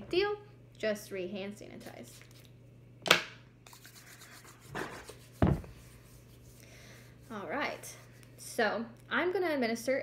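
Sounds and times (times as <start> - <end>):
hands rubbing together: 3.7 - 7.6
heavy thump: 5.4 - 5.7.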